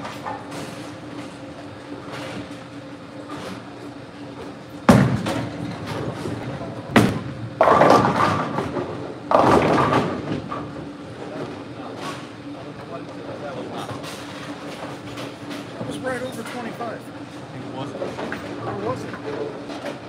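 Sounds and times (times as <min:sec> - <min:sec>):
ball hitting pins: 0:06.9 - 0:10.5.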